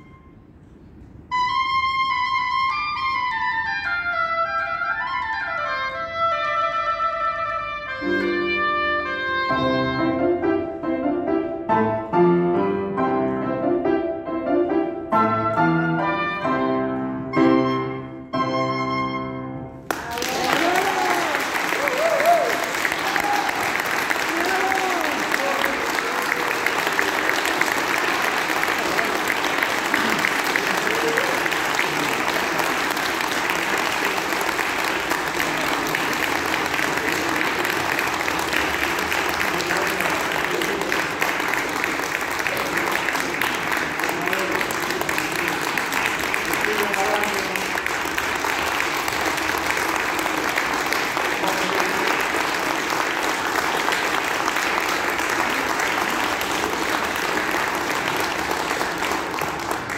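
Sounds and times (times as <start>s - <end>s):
audience applauding: 19.9s - 59.9s
crowd voices: 23.1s - 47.3s.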